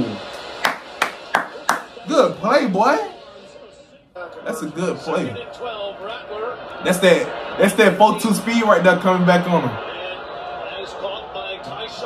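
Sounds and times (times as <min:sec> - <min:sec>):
sharp hand claps: 0:00.4 - 0:02.0.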